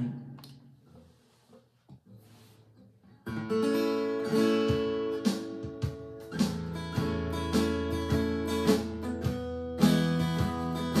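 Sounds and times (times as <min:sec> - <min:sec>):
person speaking: 0:00.0 - 0:00.4.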